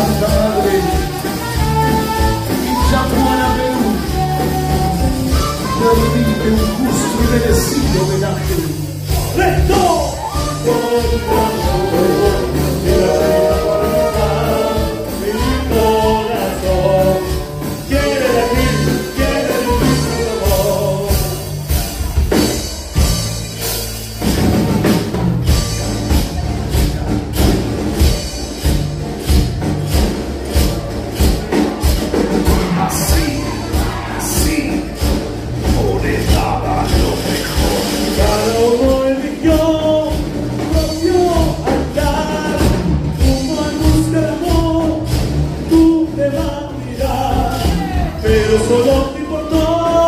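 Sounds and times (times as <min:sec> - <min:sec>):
voices singing: 0:00.0 - 0:08.4, 0:09.0 - 0:21.7, 0:32.2 - 0:39.9
live band playing: 0:00.0 - 0:50.0
steady low drum beat: 0:00.0 - 0:50.0.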